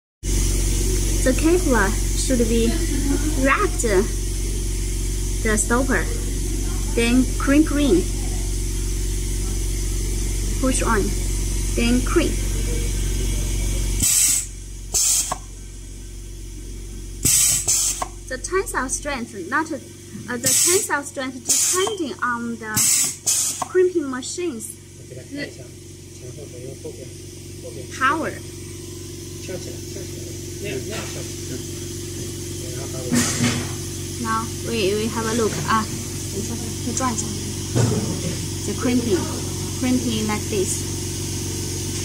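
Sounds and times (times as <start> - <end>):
low machine hum: 0.2 - 42.0
burst of hiss: 14.0 - 15.4, 17.2 - 18.2, 20.5 - 20.8, 21.5 - 21.9, 22.8 - 23.7
pneumatic press hissing: 14.0 - 15.5, 17.2 - 18.3, 20.1 - 23.9, 31.2 - 33.9.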